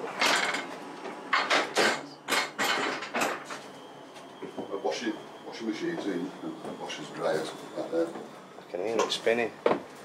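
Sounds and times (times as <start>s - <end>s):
footsteps and knocking fittings: 9.0s - 10.0s.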